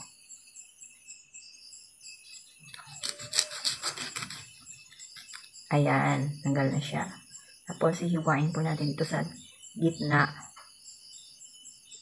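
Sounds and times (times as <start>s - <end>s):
knife sawing through fruit skin: 2.6s - 5.5s.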